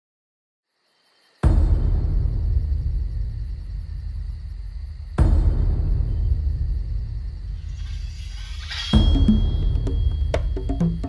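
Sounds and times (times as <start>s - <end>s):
deep booming hit: 1.5s - 7.6s
rising swell: 7.6s - 11.0s.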